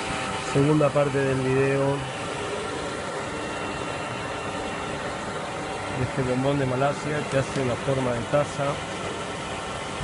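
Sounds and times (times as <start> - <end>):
steady ventilation hum: 0.0 - 10.0.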